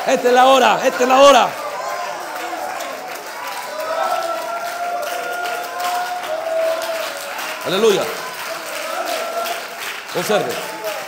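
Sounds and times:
crowd clapping and cheering: 0.0 - 11.0.

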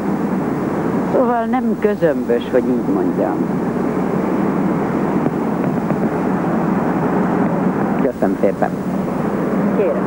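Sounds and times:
city background rumble: 0.0 - 10.0.

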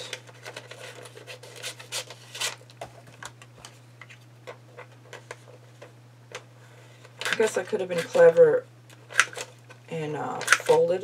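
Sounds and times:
paper rustling and crinkling: 0.0 - 5.9.

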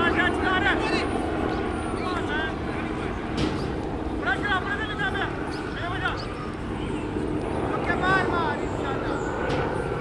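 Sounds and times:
birds chirping: 0.0 - 10.0
distant traffic: 0.0 - 10.0.

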